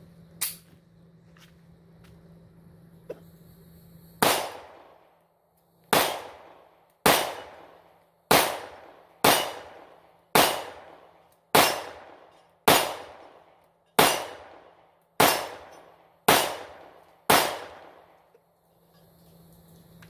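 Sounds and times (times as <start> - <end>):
pistol shots echoing: 4.2 - 5.1, 5.9 - 18.2.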